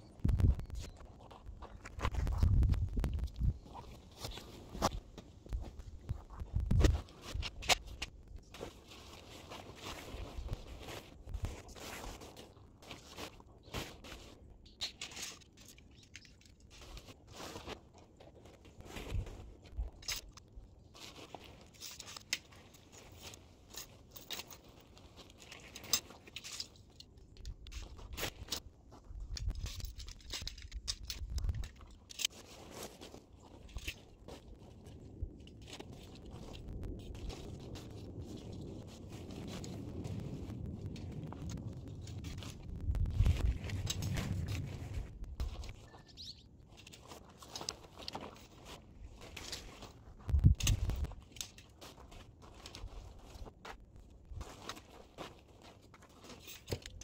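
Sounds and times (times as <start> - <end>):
tent poles clicking and scraping: 0.2 - 57.0
tent fabric rustling: 3.6 - 14.6, 16.7 - 20.0, 32.1 - 40.4, 42.2 - 56.9.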